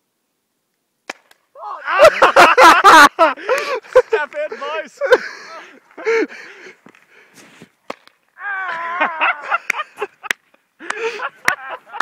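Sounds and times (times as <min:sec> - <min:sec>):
person speaking: 0:03.8 - 0:06.2.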